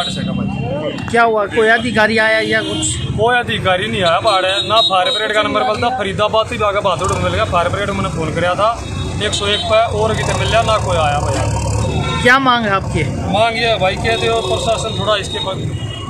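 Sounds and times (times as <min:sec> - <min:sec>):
men talking: 0:00.0 - 0:15.8
road traffic rumble: 0:00.0 - 0:16.0
vehicle passing: 0:06.2 - 0:15.9.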